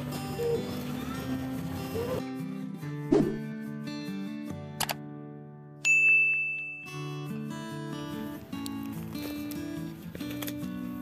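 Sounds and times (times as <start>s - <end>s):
soft guitar music: 0.0s - 11.0s
high bell-like ding: 5.8s - 7.4s.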